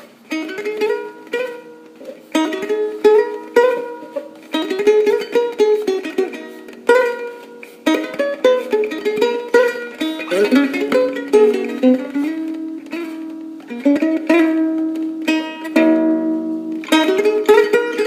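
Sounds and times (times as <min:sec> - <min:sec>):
plucked notes and chords: 0:00.0 - 0:18.0.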